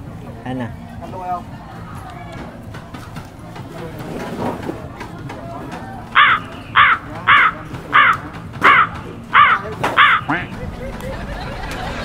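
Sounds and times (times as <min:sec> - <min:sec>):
woman cackling with laughter: 0:10.6 - 0:12.0.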